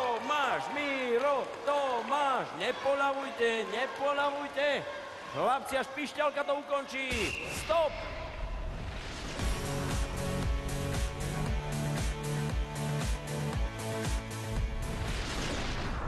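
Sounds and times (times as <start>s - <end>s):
background music with steady beat: 9.4s - 15.4s.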